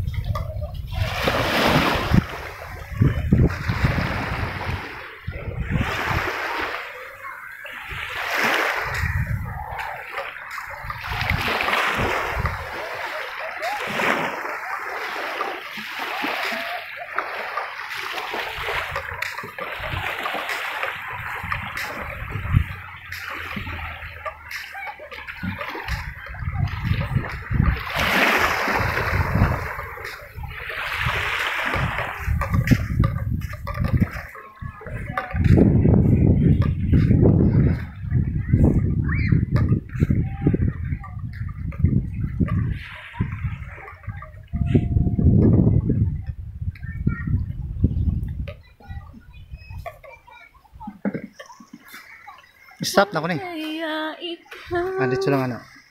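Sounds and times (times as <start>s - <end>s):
small waves lapping on shore: 0.0s - 55.9s
low rumbling microphone noise: 31.8s - 49.8s.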